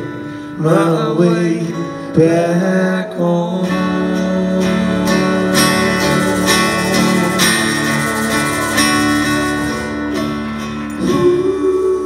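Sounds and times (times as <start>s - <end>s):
acoustic guitar strummed slowly: 0.0s - 12.0s
band playing instrumental: 4.6s - 11.5s.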